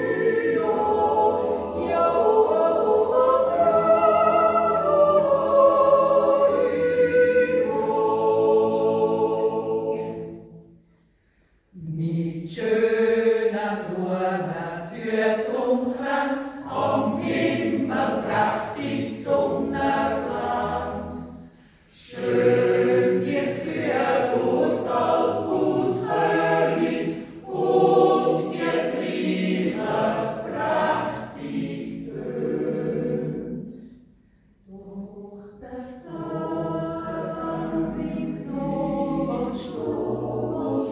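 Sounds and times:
choir yodeling unaccompanied: 0.0 - 10.7, 11.8 - 33.9, 34.7 - 40.9.

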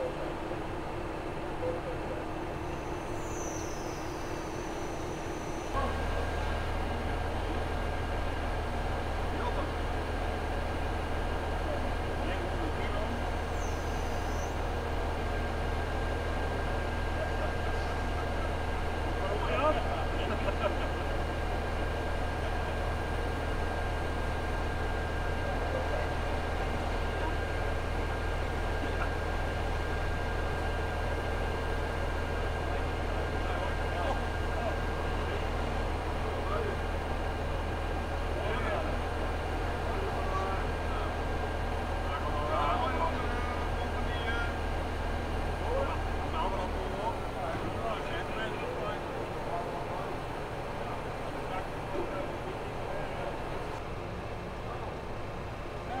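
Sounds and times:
diesel engine running: 0.0 - 56.0
faint voices: 0.0 - 56.0.

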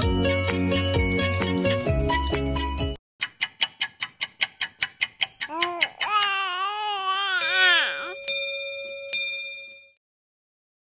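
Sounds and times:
bell-like chime: 7.4 - 10.0.

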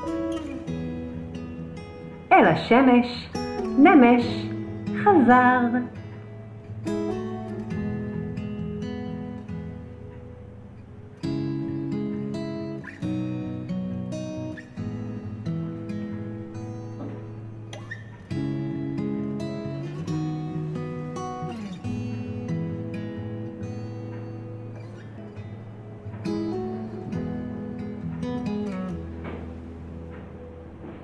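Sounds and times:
acoustic guitar strummed and plucked: 0.0 - 31.0.

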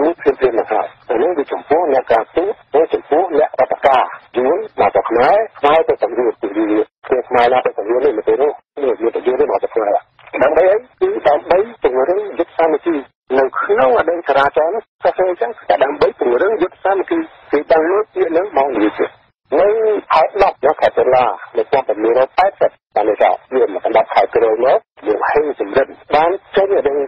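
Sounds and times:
radio news speech: 0.0 - 27.0.

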